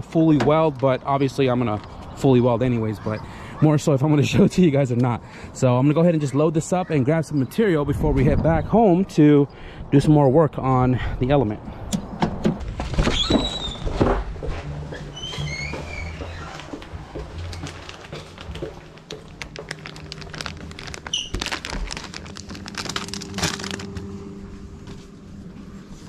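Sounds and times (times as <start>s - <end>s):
steady low hum: 16.9s - 26.0s
packet crinkling: 17.5s - 24.1s
short squeaky chirps: 21.1s - 21.4s.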